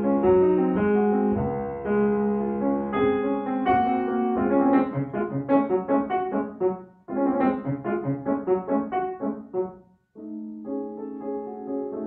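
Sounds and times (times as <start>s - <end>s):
solo grand piano classical music: 0.0s - 12.0s.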